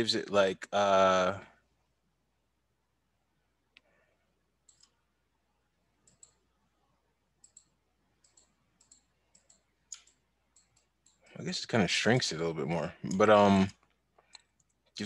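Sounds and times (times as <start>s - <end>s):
faint computer mouse clicks: 4.6s - 5.0s, 6.0s - 6.4s, 7.4s - 11.3s, 14.2s - 14.8s.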